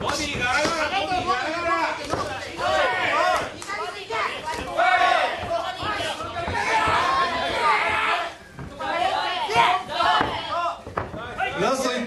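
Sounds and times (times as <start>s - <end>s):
faint thuds of blows: 0.0s - 11.6s
people shouting: 0.0s - 11.7s.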